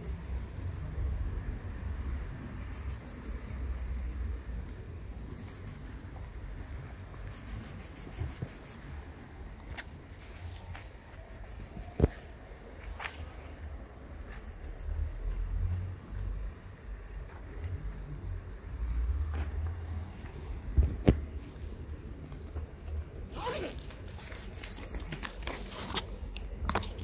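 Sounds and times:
plastic rustling and scraping: 23.4s - 27.0s.

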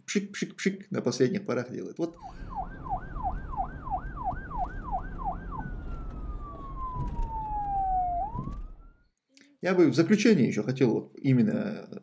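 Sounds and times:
police siren: 2.2s - 9.1s.

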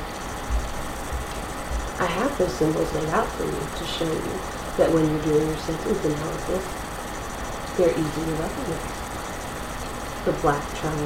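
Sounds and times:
low hum: 0.0s - 11.0s
steady background hiss: 0.0s - 11.0s.

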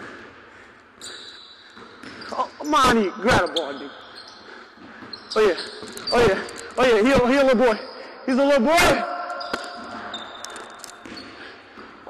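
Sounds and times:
court noise ringing in hall: 0.0s - 12.0s
sneaker squeak: 1.0s - 12.0s.

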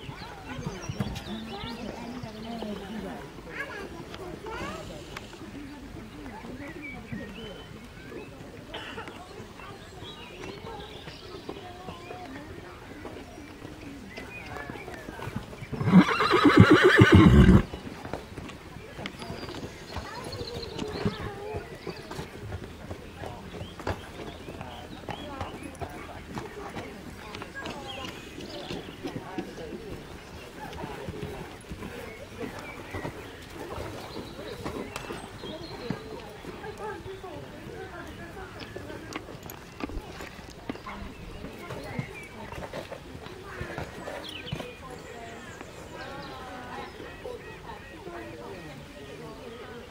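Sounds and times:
people talking: 0.0s - 49.9s
horse hoofbeats on sand: 9.8s - 48.2s
horse whinnying: 15.8s - 17.7s.

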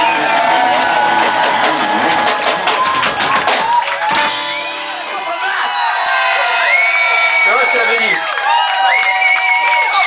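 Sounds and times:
drum kit: 0.0s - 6.7s
crowd noise: 0.0s - 10.0s.

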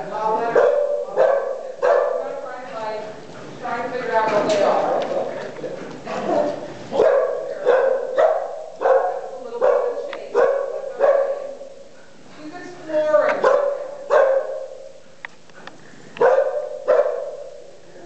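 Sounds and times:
dog barking: 0.5s - 2.4s, 7.0s - 11.9s, 13.4s - 15.0s, 16.2s - 17.8s.

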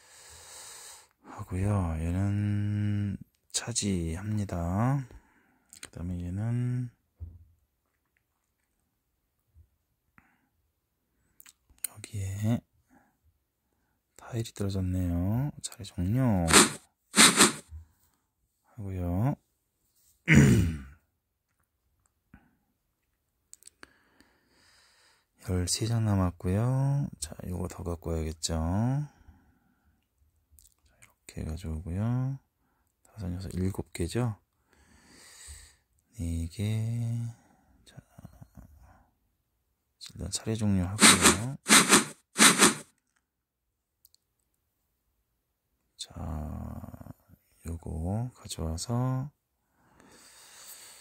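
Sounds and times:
game pieces clicking: 16.5s - 17.6s, 41.0s - 42.8s
person sighing: 20.3s - 20.9s.

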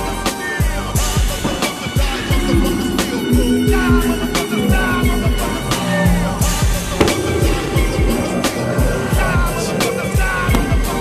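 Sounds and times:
hip hop music: 0.0s - 11.0s.

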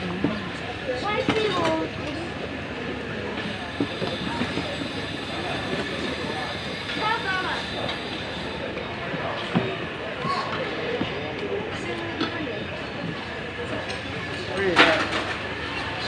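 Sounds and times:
market crowd chatter: 0.0s - 16.0s.

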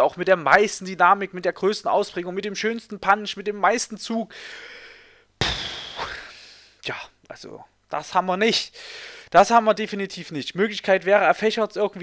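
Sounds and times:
man sighing breath: 4.3s - 6.8s
breath pop on microphone: 5.4s - 6.1s.

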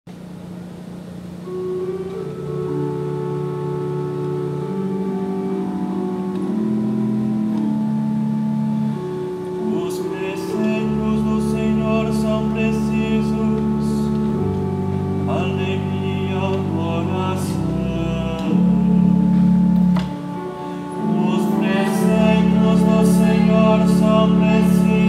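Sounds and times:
pipe organ chords: 0.2s - 25.0s
low organ pedal note: 0.5s - 25.0s
person singing: 9.6s - 14.4s, 15.3s - 19.1s, 20.4s - 25.0s.

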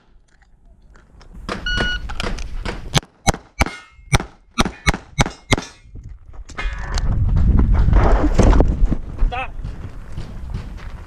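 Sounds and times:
wind and handling noise: 0.0s - 11.0s
pistol shots: 2.2s - 5.8s.

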